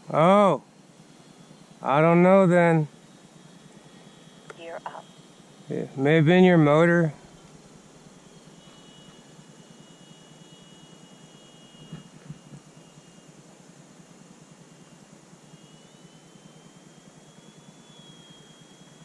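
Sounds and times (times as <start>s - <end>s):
model airplanes high whine: 0.0s - 19.0s.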